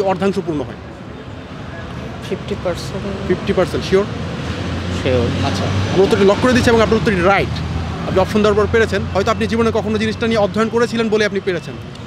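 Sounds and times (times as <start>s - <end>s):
man talking: 0.0s - 0.8s, 2.1s - 4.2s, 4.9s - 11.9s
low rumble of road traffic: 0.0s - 12.0s.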